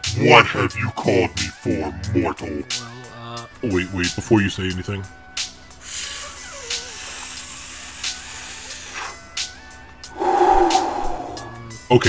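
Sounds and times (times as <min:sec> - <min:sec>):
faint background music: 0:00.0 - 0:12.0
hissing inhale: 0:05.8 - 0:09.4, 0:10.1 - 0:11.8
voiced sigh exhale: 0:10.1 - 0:11.8.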